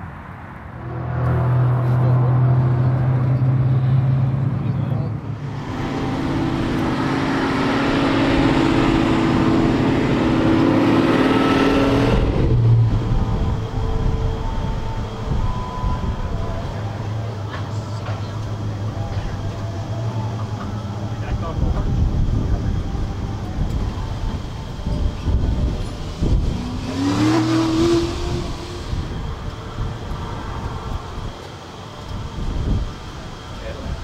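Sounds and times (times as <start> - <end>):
car engine idling and revving: 0.0 - 34.0.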